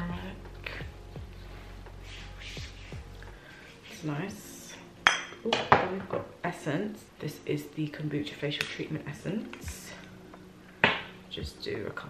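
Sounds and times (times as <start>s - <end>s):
bottles clinking: 5.1s - 6.4s.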